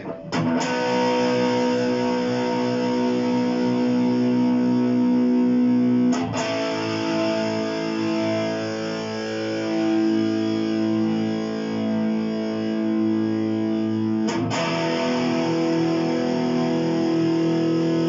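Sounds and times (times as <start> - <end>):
distorted electric guitar chord: 0.0 - 18.0.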